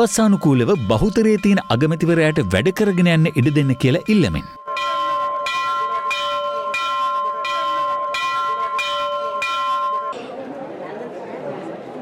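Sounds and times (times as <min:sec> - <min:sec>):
temple bell ringing: 0:00.0 - 0:10.3
crowd chatter: 0:10.1 - 0:12.0.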